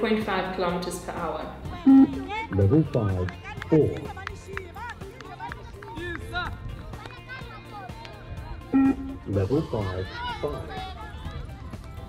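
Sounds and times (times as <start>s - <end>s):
background music: 0.0s - 12.0s
short beep: 1.9s - 2.3s, 8.8s - 9.2s
children calling out and cheering: 6.9s - 7.9s.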